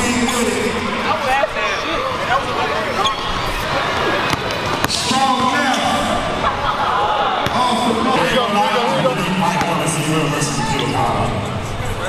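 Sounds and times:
chatter of spectators: 0:00.0 - 0:12.0.

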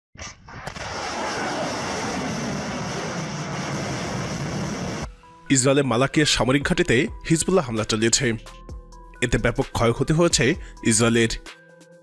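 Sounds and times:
rocket motor rushing: 0:00.5 - 0:05.1.

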